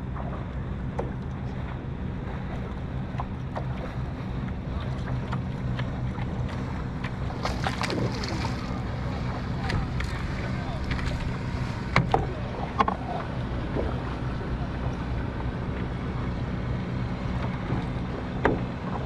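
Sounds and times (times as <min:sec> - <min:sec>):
water lapping at kayak hull: 0:00.0 - 0:19.0
wind rumbling on microphone: 0:00.0 - 0:19.0.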